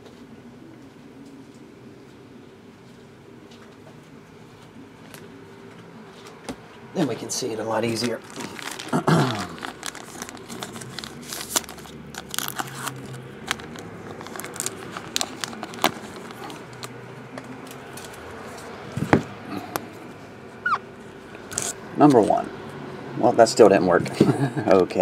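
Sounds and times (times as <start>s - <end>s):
plastic bag crinkling: 7.6s - 18.6s.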